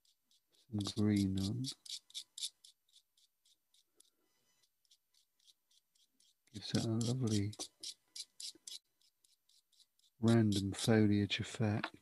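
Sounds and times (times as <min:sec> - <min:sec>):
knife rasping pastel stick: 0:00.0 - 0:11.1.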